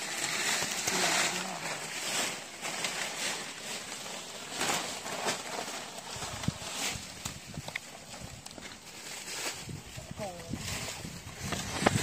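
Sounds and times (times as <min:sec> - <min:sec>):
footsteps on dry leaves: 0:00.0 - 0:12.0.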